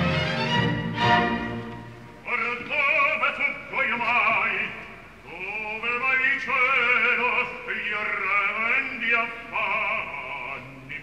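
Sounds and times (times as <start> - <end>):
operatic baritone singing: 2.2 - 11.0.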